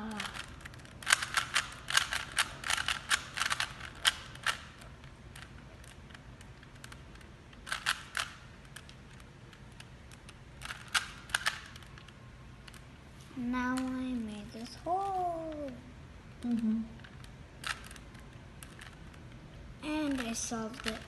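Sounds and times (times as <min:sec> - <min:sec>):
rubik's cube clicking: 0:00.0 - 0:12.8, 0:16.4 - 0:19.4, 0:20.0 - 0:21.0.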